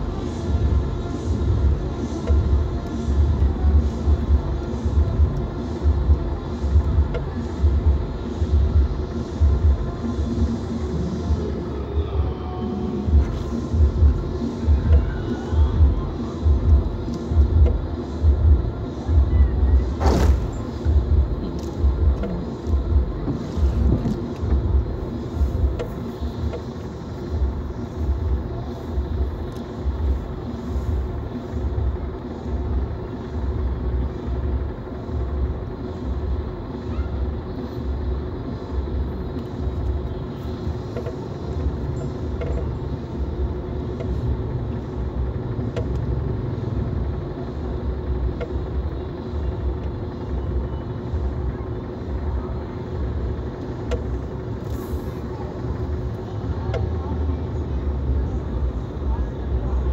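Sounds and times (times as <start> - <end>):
car rumble from inside cabin: 0.0 - 59.9
steady low thumping: 13.0 - 35.7.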